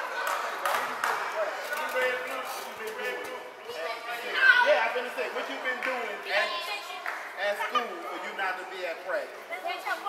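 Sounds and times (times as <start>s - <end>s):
mixed voices and chatter: 0.0s - 10.0s.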